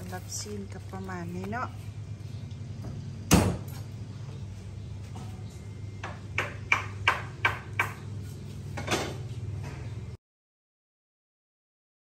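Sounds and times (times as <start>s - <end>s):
steady low hum: 0.0s - 10.2s.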